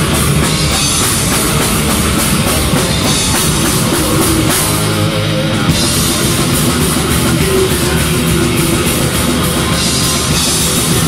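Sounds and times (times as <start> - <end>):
drum kit beat: 0.0 - 11.0
electric guitars: 0.0 - 11.0.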